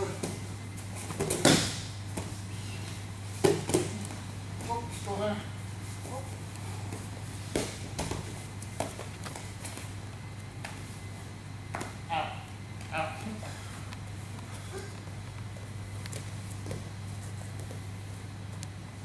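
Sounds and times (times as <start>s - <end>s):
people scuffling on a mat: 0.0s - 19.0s
steady low hum: 0.0s - 19.0s
bodies thumping on a mat: 3.3s - 4.0s.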